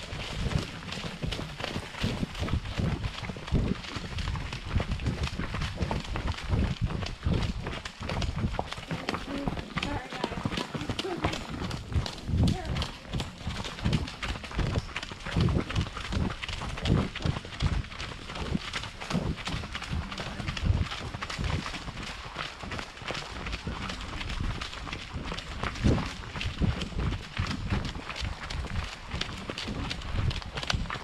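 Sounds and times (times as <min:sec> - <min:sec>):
horse hoofbeats on dirt: 0:00.0 - 0:31.0.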